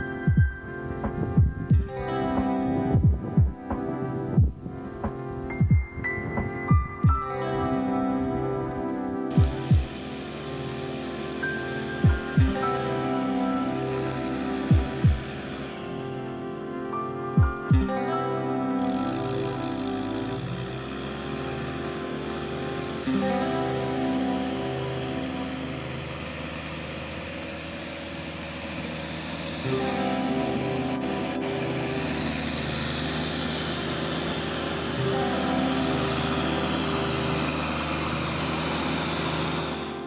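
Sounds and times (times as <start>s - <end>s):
sustained music chords: 0.0s - 40.0s.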